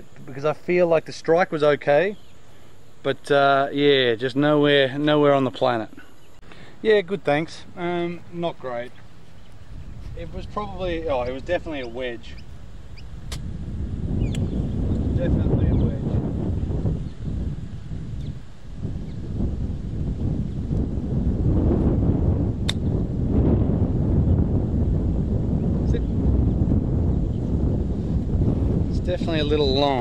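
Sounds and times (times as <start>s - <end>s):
wind buffeting microphone: 6.8s - 30.0s
golf club striking ball: 22.6s - 22.9s.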